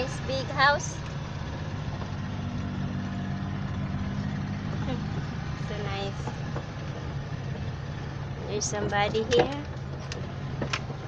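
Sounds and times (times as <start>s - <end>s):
car engine running: 0.0s - 11.0s
road noise: 0.0s - 11.0s.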